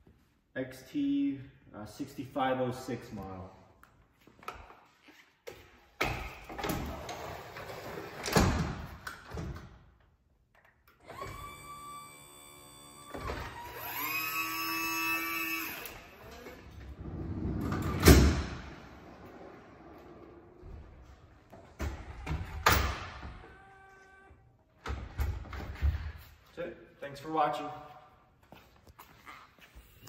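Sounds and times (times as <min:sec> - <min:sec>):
electric-hydraulic motor whine: 0:11.0 - 0:16.9.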